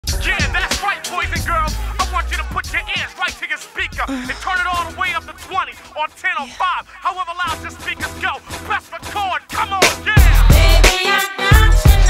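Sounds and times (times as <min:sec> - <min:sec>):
deep bass line: 0:00.0 - 0:03.1
man rapping over a beat: 0:00.0 - 0:11.0.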